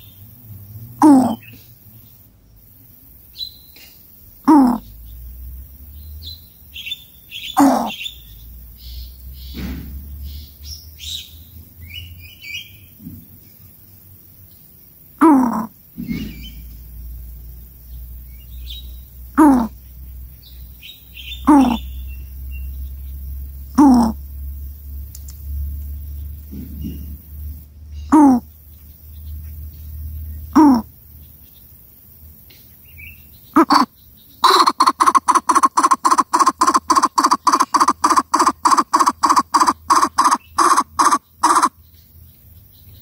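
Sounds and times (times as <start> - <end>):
coucal deep call: 1.0 - 1.5, 4.5 - 4.9, 7.4 - 8.1, 15.2 - 15.8, 19.4 - 19.8, 21.4 - 22.0, 23.8 - 24.2, 28.1 - 28.5, 30.5 - 30.9, 33.6 - 41.8
high chirps: 6.2 - 9.6, 20.8 - 24.2, 33.0 - 41.9.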